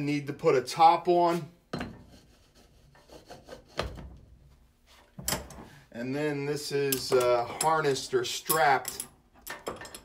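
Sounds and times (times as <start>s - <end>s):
faint rubbing and scraping: 1.1s - 6.2s.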